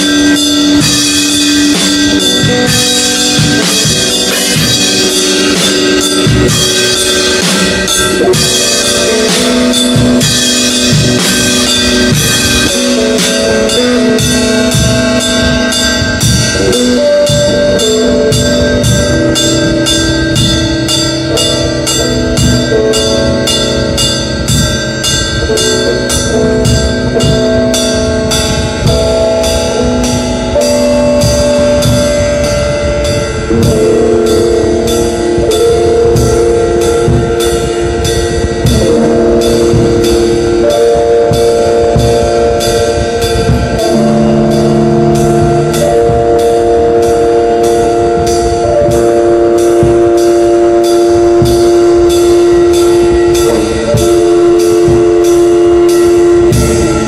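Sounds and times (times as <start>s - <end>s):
distorted electric guitar chords: 0.0s - 57.0s
drums: 0.0s - 57.0s
ringing cymbal strikes: 0.0s - 57.0s
bass drum hits: 41.3s - 49.1s.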